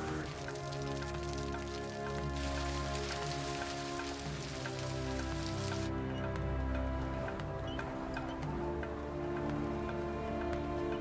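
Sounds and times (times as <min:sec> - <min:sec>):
rain on leaves: 0:00.0 - 0:06.0
background music of held notes: 0:00.0 - 0:11.0.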